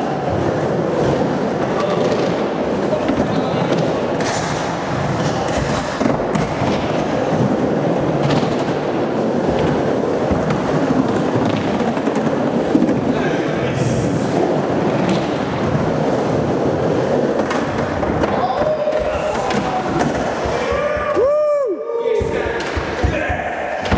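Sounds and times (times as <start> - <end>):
skateboard wheels rolling on concrete: 0.0 - 21.5.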